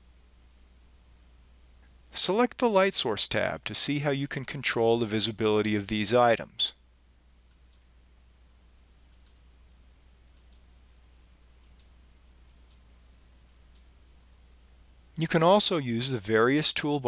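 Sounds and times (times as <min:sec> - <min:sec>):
low steady hum: 0:00.0 - 0:17.0
computer mouse clicks: 0:09.1 - 0:09.4, 0:10.3 - 0:10.7, 0:11.6 - 0:12.8.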